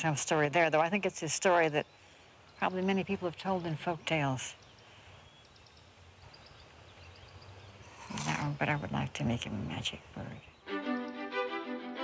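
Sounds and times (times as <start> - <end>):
distant birds chirping: 0.0 - 11.8.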